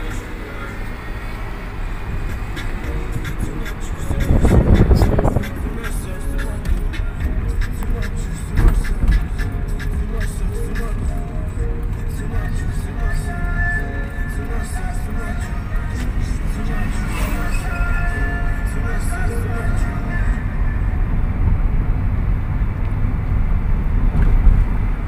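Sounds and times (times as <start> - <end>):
music playing: 0.0 - 21.3
car engine and road noise: 0.0 - 25.0.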